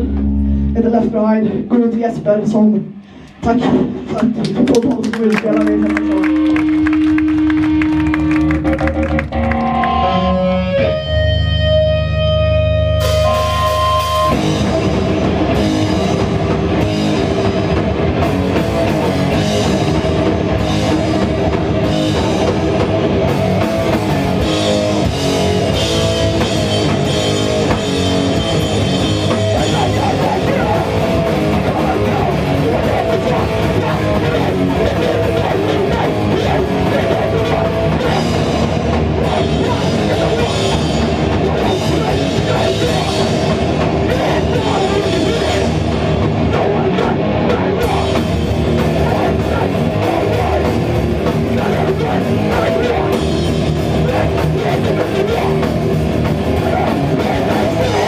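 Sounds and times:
hardcore punk band playing live: 0.0 - 58.0.

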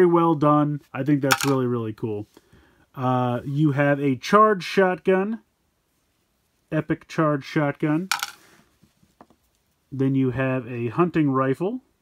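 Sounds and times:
plastic toy rattle: 1.3 - 1.6, 8.1 - 8.4.

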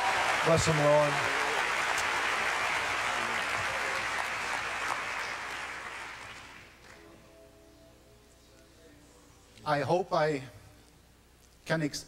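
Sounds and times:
congregation applauding: 0.0 - 7.0.

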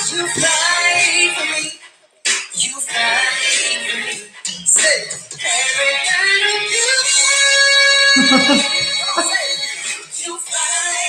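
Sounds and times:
backing music: 4.7 - 10.0
woman singing: 6.8 - 9.6.

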